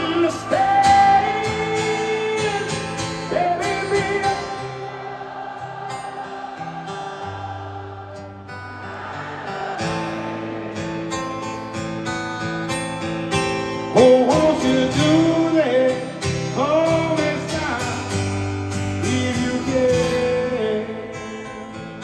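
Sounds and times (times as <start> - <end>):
acoustic guitar: 0.0 - 22.0.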